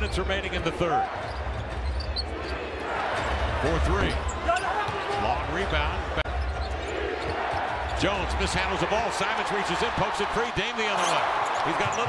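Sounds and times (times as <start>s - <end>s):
crowd noise hum: 0.0s - 12.0s.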